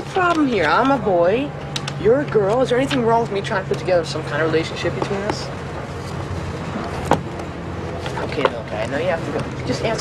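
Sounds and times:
bus rumbling: 0:00.0 - 0:10.0.

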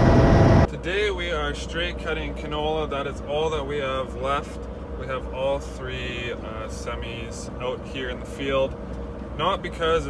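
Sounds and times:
truck engine humming: 0:00.0 - 0:10.0
man talking: 0:00.7 - 0:08.8, 0:09.4 - 0:10.0.

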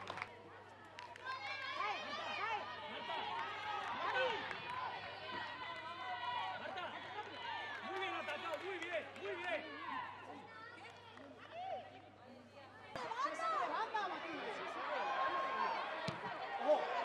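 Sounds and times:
players and spectators shouting: 0:01.3 - 0:10.4, 0:13.0 - 0:17.0.

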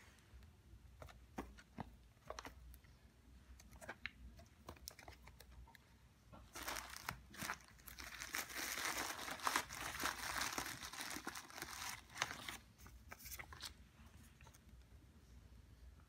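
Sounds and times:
plastic packaging crinkling: 0:06.4 - 0:13.8.

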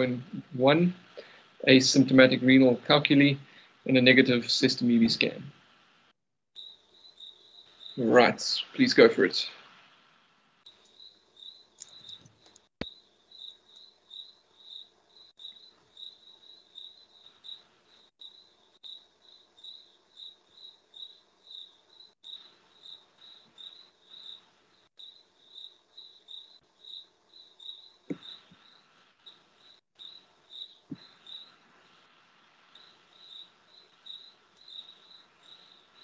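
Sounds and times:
cricket chirping: 0:06.6 - 0:08.4, 0:10.6 - 0:36.0.

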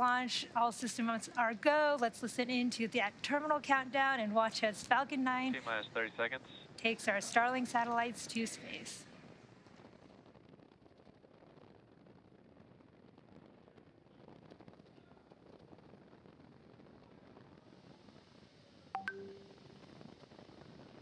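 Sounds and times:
faint steady hiss: 0:00.0 - 0:21.0
brief tone: 0:19.0 - 0:19.8.

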